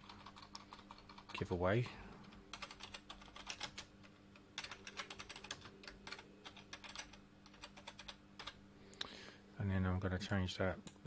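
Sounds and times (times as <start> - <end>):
computer keyboard typing: 0.0 - 1.6, 2.2 - 8.6
low steady hum: 0.0 - 11.0.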